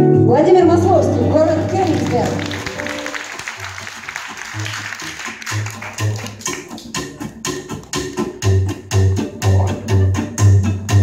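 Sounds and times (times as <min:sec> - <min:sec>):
acoustic guitar rhythm chords: 0:00.0 - 0:11.0
plucked double bass: 0:05.5 - 0:11.0.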